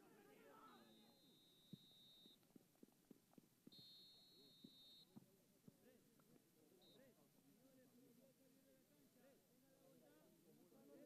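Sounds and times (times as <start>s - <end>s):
referee's whistle blasts: 0.5s - 2.4s, 3.7s - 5.1s.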